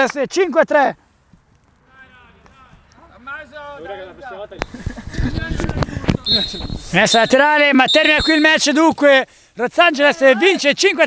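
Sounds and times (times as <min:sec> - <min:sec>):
players calling out: 0:06.0 - 0:09.2.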